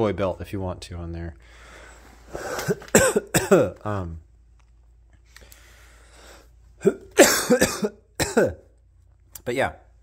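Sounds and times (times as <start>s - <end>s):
man coughing: 2.4s - 3.9s, 6.8s - 8.8s.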